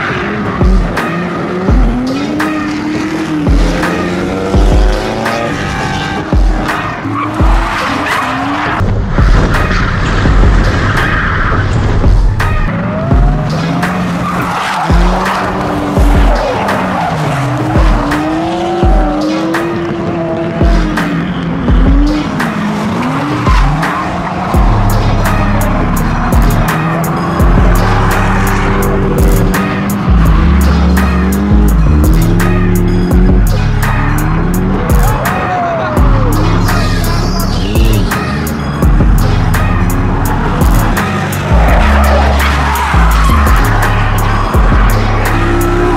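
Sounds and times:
car engines revving: 0.0s - 45.9s
music with steady beat: 0.1s - 10.8s, 12.0s - 45.9s
tyres squealing: 12.8s - 33.2s, 33.8s - 45.9s.

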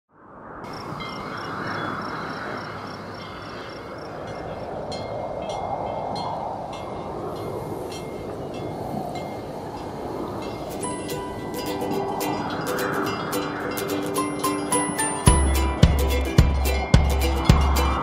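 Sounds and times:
whooshing rush of noise: 0.1s - 18.0s.

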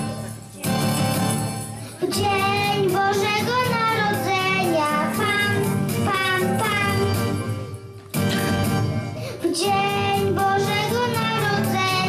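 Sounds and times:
girl singing into microphone: 0.0s - 7.5s, 9.2s - 12.0s
backing music: 0.0s - 12.0s.

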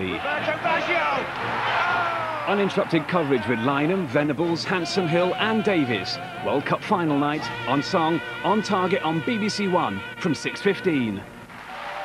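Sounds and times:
people shouting: 0.0s - 4.0s
stadium crowd cheering: 0.0s - 6.3s, 11.5s - 12.0s.

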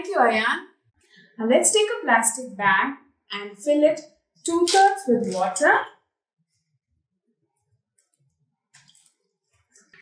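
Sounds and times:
water splashing into plastic bag: 4.6s - 5.8s, 8.8s - 10.0s.

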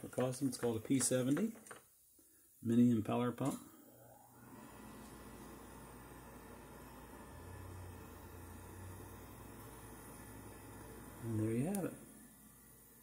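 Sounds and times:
room tone hiss: 0.0s - 13.0s.

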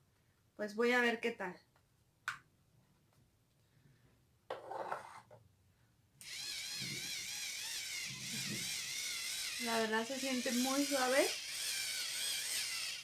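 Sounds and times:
cleansing brush motor buzzing: 6.2s - 13.0s.

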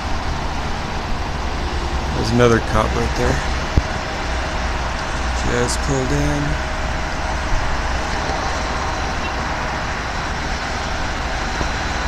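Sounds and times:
road traffic noise: 0.0s - 12.0s
vehicle engines idling: 0.0s - 12.0s.

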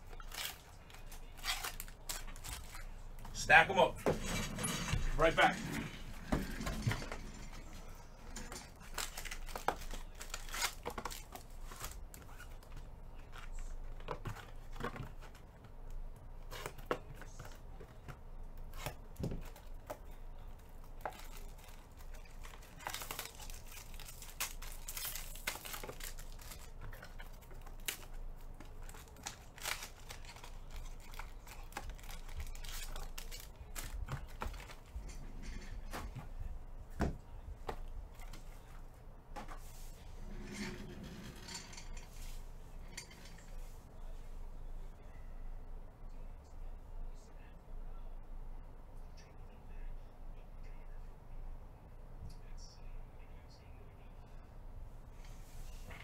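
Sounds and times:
plastic shrink-wrap crinkling: 8.6s - 12.4s, 21.0s - 35.2s.

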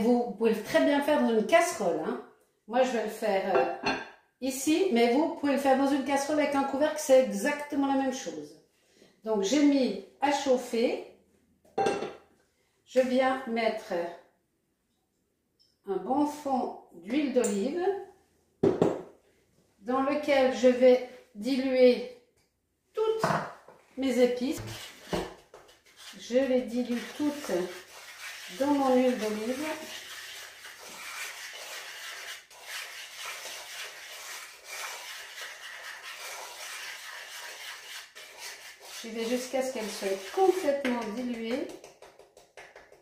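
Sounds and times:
ceramic bowl clunk: 3.5s - 4.2s, 11.8s - 12.2s
utensil stirring and scraping pot: 24.5s - 41.6s.

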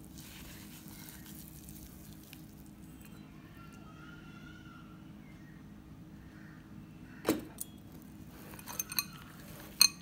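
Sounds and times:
glass bowl clinking: 8.5s - 10.0s.

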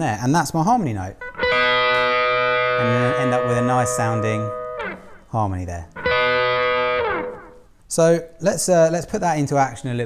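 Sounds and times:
overdriven electric guitar chord: 1.2s - 5.3s, 6.0s - 7.6s.

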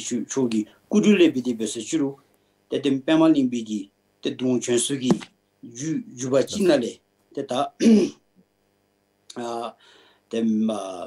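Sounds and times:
man clearing his throat: 7.8s - 8.2s.

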